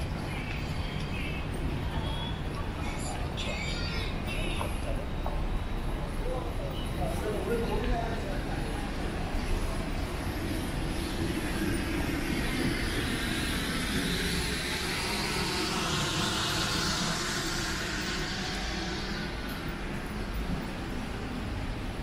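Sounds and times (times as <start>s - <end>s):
street background noise: 0.0s - 22.0s.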